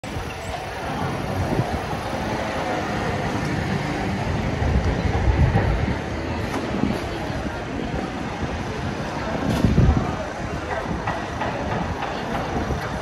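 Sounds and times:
pedestrian noise: 0.0s - 13.0s
traffic noise: 0.0s - 13.0s.

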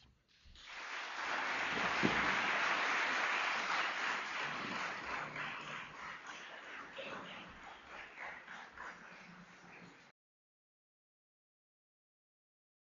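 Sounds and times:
audience applauding: 0.6s - 10.1s.

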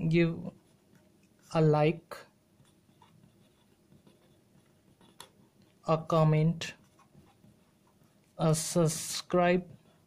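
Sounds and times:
marker pen scratching on paper: 2.5s - 8.4s.

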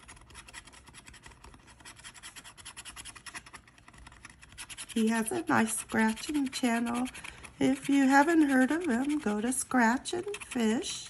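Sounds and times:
scratching lottery ticket: 0.0s - 11.0s.

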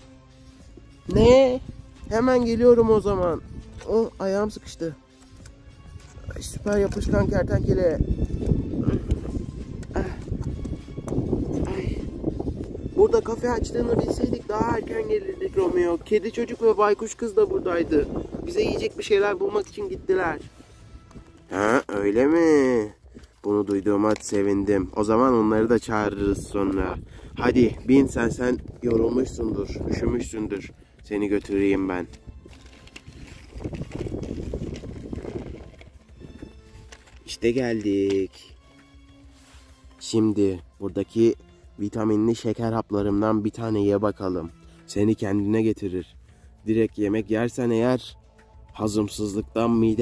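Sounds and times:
wind rumbling on microphone: 1.0s - 3.8s, 5.6s - 21.6s, 25.6s - 36.9s
toy wheels rattling over wood: 31.4s - 36.0s.

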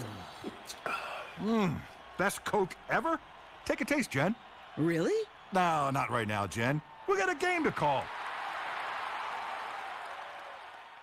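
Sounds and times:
crowd applauding and cheering: 0.0s - 11.0s.

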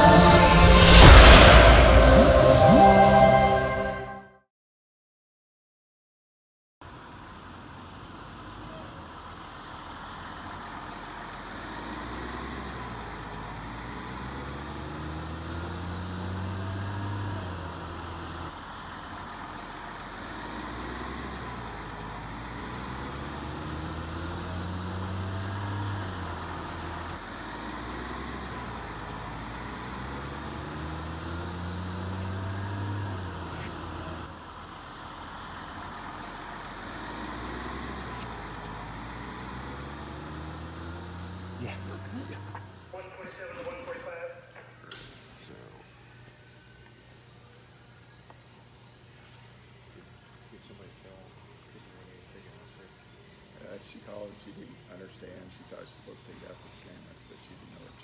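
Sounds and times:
bus engines running: 0.0s - 4.1s, 6.8s - 58.0s.

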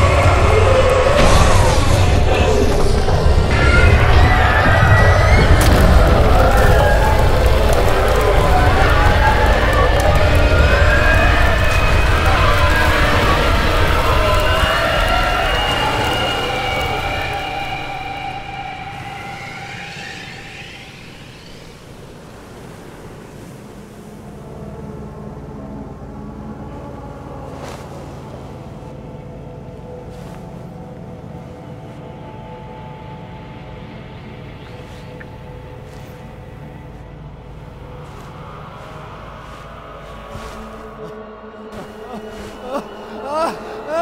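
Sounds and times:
heavy rumble: 0.0s - 44.0s
low engine drone: 23.6s - 44.0s.

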